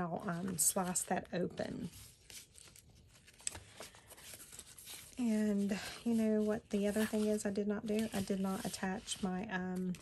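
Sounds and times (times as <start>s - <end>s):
paper rustling and clicks: 2.3s - 5.2s.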